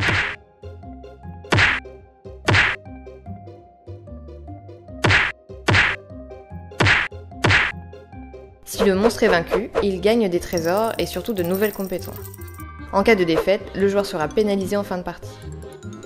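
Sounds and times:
hands slapping cards on table: 0.0s - 0.4s, 1.5s - 1.8s, 2.5s - 2.8s, 5.0s - 6.0s, 6.8s - 7.8s
soft background music: 0.0s - 16.0s.

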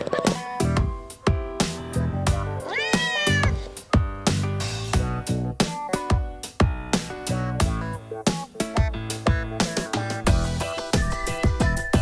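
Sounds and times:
music with drum beat: 0.0s - 12.0s
cat meowing: 2.6s - 3.7s.

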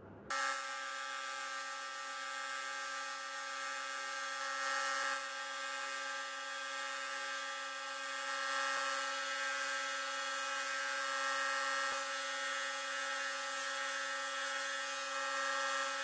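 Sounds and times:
belt grinder hum and whine: 0.0s - 16.0s.

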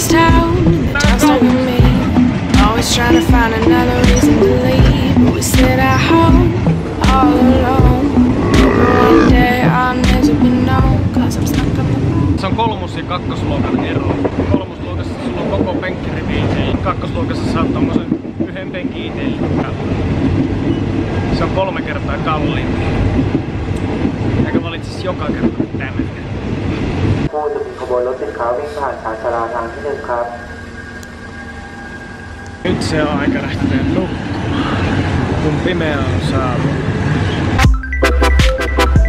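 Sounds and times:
train carriage rumble and rattle: 0.0s - 37.6s.

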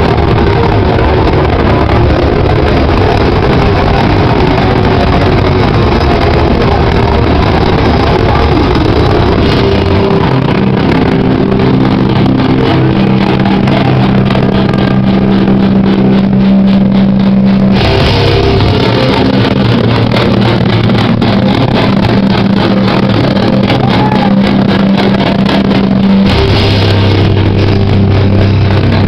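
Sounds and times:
distorted electric guitars: 0.0s - 29.0s
fast drumming: 0.0s - 29.0s.

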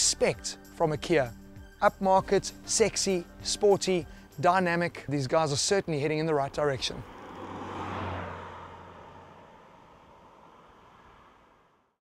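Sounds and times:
car driving past: 6.6s - 12.0s.

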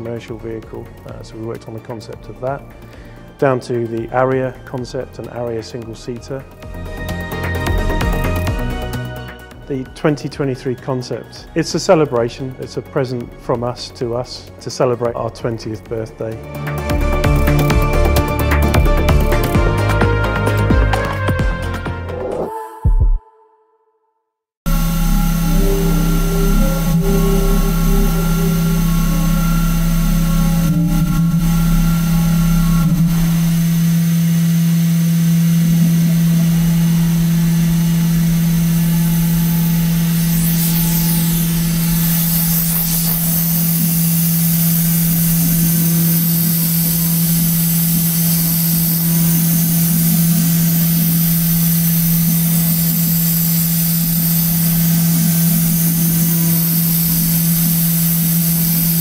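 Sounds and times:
milling machine spindle hum: 16.2s - 21.2s, 24.7s - 59.0s.

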